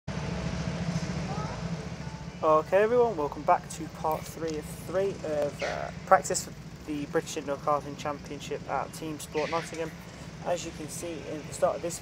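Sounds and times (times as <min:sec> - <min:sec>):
go-kart engines idling: 0:00.1 - 0:12.0.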